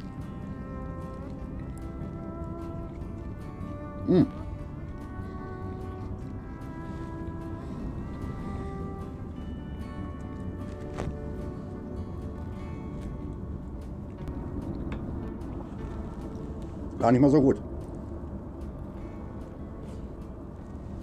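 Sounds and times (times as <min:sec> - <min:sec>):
background music with held notes: 0:00.0 - 0:21.0.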